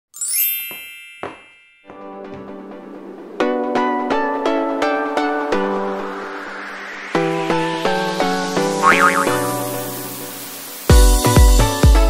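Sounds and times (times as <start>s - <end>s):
music: 0.1s - 1.0s, 1.8s - 12.0s
bright shimmering chime: 0.2s - 2.2s.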